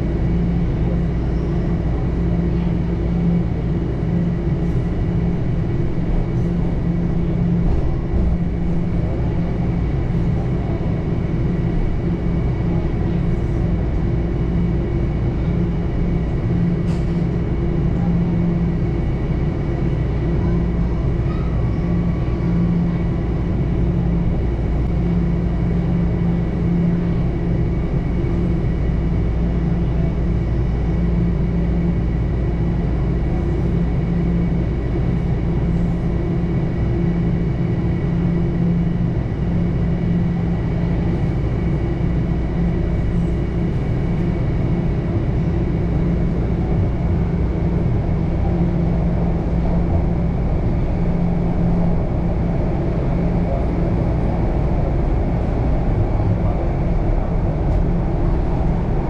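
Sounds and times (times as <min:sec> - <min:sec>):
subway wheels rumbling on rail: 0:00.0 - 0:59.0.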